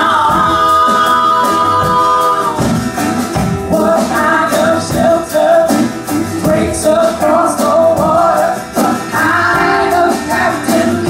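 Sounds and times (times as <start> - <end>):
acoustic guitar: 0.0 - 11.0
bass: 0.0 - 11.0
hand percussion: 0.0 - 11.0
voices singing together: 0.0 - 11.0.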